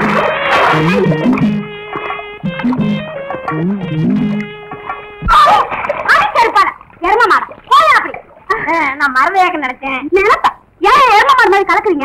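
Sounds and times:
water splashing: 0.0 - 2.3, 4.7 - 8.9
women calling out: 5.2 - 6.6.

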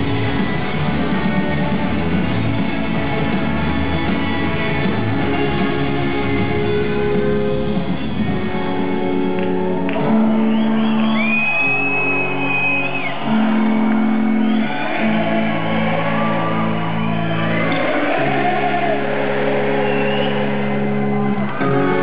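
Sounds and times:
live rock band: 0.0 - 22.0.

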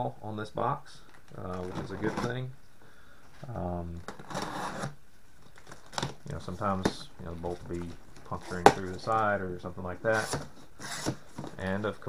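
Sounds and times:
tool cutting cardboard box: 4.1 - 4.9, 10.1 - 11.6.

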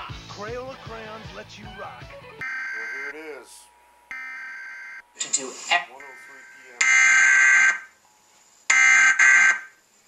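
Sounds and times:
buzzy electronic data tones: 2.4 - 3.5, 4.1 - 7.9
person speaking: 5.2 - 6.9.

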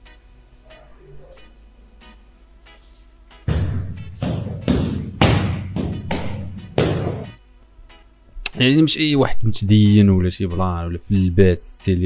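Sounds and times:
punching bag thuds: 3.5 - 7.3.

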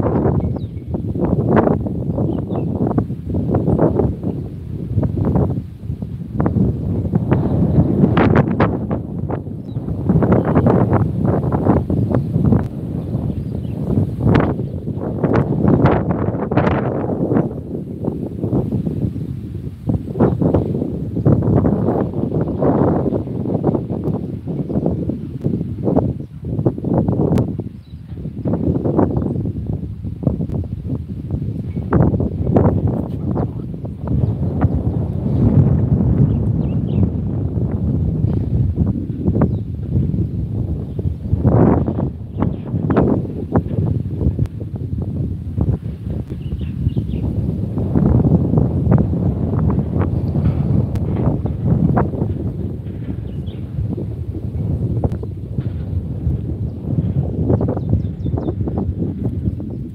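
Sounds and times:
strong wind buffeting microphone: 0.0 - 59.9.

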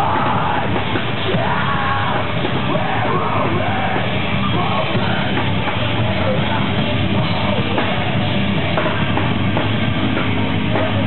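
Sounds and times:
vocalist screaming: 0.0 - 5.2
distorted guitars: 0.0 - 11.0
drums: 0.0 - 11.0.

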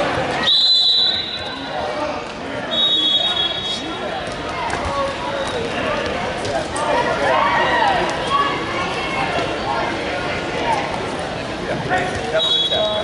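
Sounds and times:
voices echoing in a gym: 0.0 - 13.0
referee's whistle blasts: 0.4 - 1.7, 2.7 - 4.0, 12.4 - 13.0.

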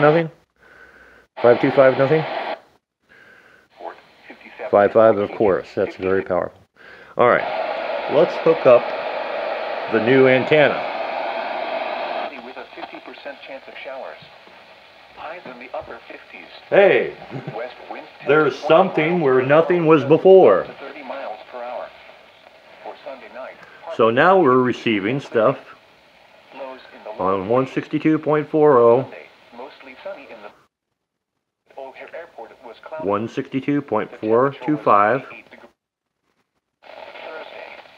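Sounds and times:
radio static hiss: 0.0 - 0.6, 1.3 - 30.7, 31.7 - 37.9
faint radio broadcast voice: 1.4 - 2.6, 3.7 - 6.4, 7.2 - 30.7, 31.7 - 35.8, 36.8 - 37.9.

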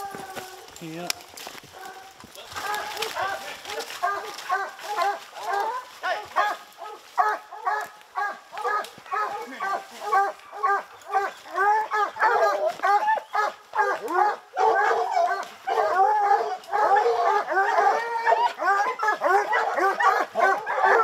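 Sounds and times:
hounds barking and baying: 0.0 - 21.0.

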